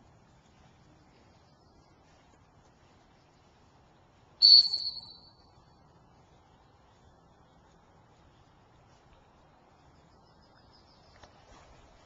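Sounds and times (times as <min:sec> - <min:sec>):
loud high whistle blast: 0:04.4 - 0:05.4.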